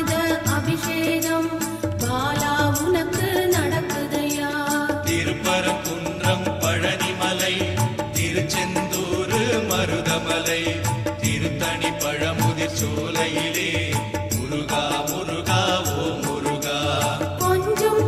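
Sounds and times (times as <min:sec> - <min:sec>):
devotional song: 0:00.0 - 0:18.0
steady percussion: 0:00.0 - 0:18.0
chant-like singing: 0:02.2 - 0:18.0.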